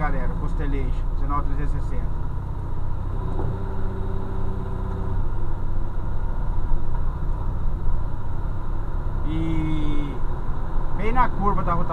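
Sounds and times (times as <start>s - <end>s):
truck diesel engine rumble: 0.0s - 11.9s.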